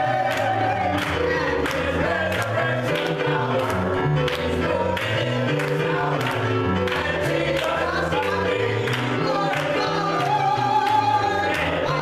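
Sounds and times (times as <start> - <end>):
gospel choir singing: 0.0 - 12.0
hand claps: 0.0 - 12.0.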